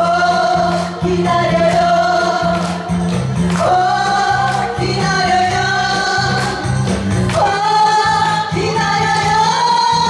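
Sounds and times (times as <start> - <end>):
guitar accompaniment: 0.0 - 10.0
rhythmic bass line: 0.0 - 10.0
women singing together: 0.0 - 10.0.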